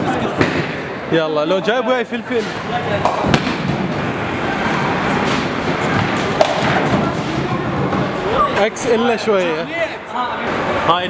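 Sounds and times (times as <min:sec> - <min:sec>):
bowling ball rolling: 0:03.0 - 0:08.4.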